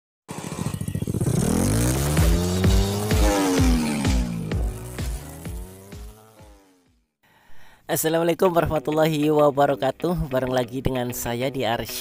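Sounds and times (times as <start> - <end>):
engine revving up: 0.3 - 6.8.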